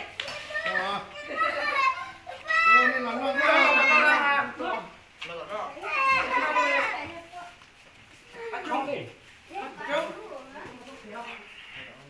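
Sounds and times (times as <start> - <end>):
children's high voices: 0.0 - 4.6, 5.8 - 7.6.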